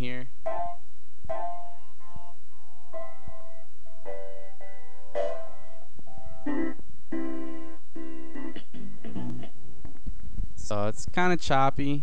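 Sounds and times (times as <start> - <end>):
choppy sliced piano-like notes: 2.9 - 9.5.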